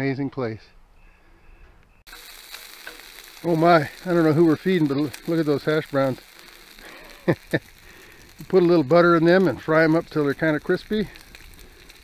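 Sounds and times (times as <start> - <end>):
food sizzling on a griddle: 2.1 - 12.0.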